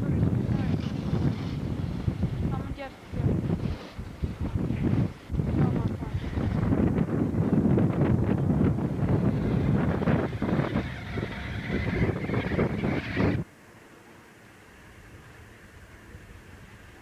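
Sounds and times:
wind buffeting microphone: 0.0 - 13.5.

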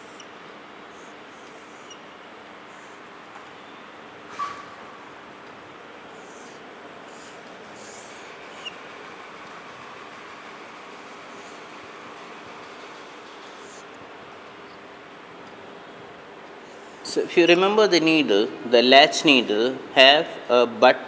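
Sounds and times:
room noise hiss: 0.0 - 21.0
marker pen scratching on whiteboard: 6.2 - 8.8, 13.3 - 13.9.

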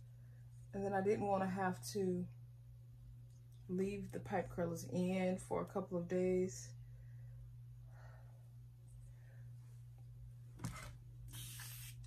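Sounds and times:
spray bottle hiss: 11.3 - 12.0.

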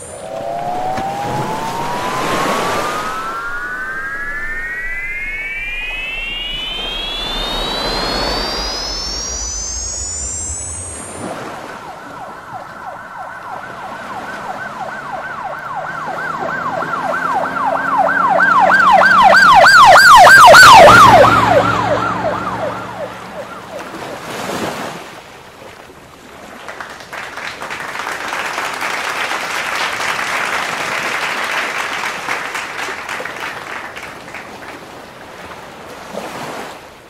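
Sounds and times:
rising electronic sweep tone: 0.0 - 23.9
siren wailing: 0.0 - 24.2.

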